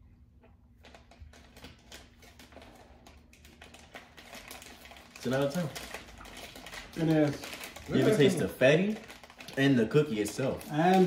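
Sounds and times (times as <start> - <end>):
people chewing crunchy cookies: 0.9 - 11.0.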